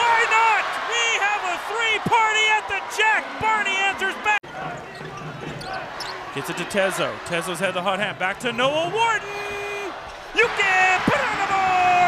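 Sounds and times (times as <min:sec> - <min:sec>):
murmur of crowd: 0:04.1 - 0:07.9.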